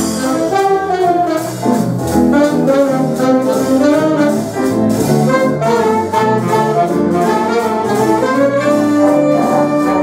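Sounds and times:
big band playing jazz: 0.0 - 10.0.

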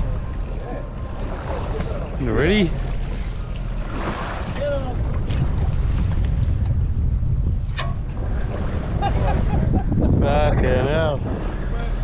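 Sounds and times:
water washing along hull: 0.0 - 12.0
wind buffeting microphone: 0.0 - 12.0.

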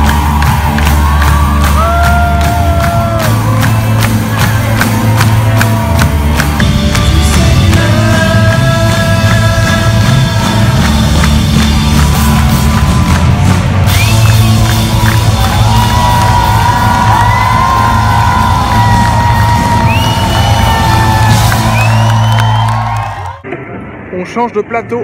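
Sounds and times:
crowd whooping and cheering: 0.0 - 8.6, 9.2 - 23.5
loud live band music: 0.0 - 23.2.

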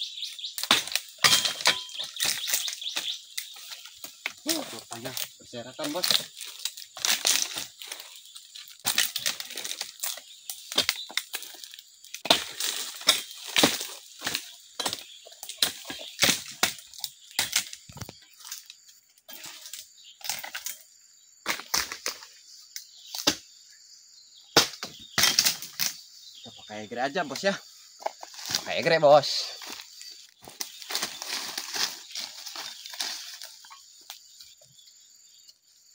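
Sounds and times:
dry leaves rustling and crackling: 0.2 - 16.4, 28.3 - 33.8
sharp cracks of breaking fronds: 0.4 - 18.7, 24.6 - 26.0, 29.6 - 34.2.

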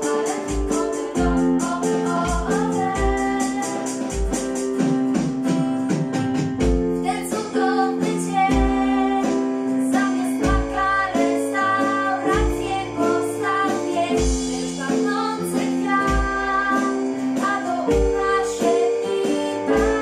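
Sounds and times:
women singing: 0.0 - 4.7, 7.0 - 20.0
acoustic guitar: 0.0 - 20.0
digital piano: 0.0 - 20.0
drum kit: 0.0 - 20.0
kick drum: 0.5 - 3.4, 4.1 - 7.2, 8.5 - 9.2, 10.4 - 11.0, 12.3 - 12.7, 14.2 - 14.6, 16.1 - 16.6, 17.9 - 18.4.

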